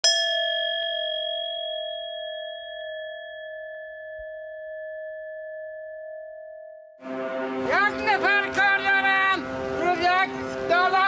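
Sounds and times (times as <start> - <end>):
struck metal bell tone: 0.0 - 7.0.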